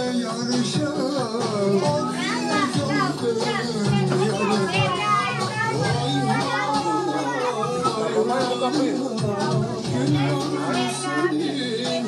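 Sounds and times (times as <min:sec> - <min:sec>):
background music: 0:00.0 - 0:12.0
children chattering: 0:01.6 - 0:12.0.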